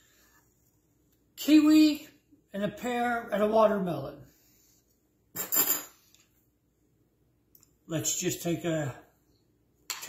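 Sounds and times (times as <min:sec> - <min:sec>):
cutlery scraping on a plate: 0:05.4 - 0:06.0.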